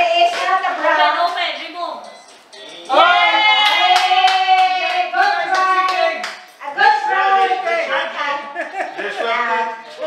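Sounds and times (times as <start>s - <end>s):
hand clapping: 3.6s - 6.6s.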